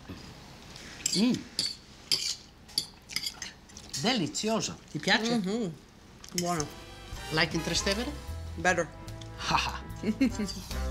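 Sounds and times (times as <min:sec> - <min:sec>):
forks clinking against a pot: 0:01.0 - 0:03.6.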